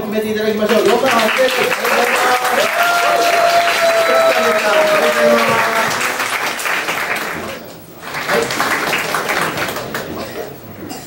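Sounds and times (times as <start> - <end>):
audience applauding: 0.6 - 10.5.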